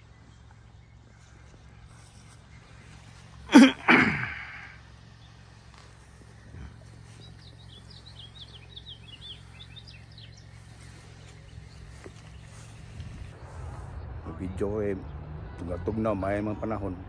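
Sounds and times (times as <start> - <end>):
faint outdoor background noise: 0.0 - 17.0
small birds chirping: 0.0 - 17.0
person sneezing loudly: 3.5 - 4.6.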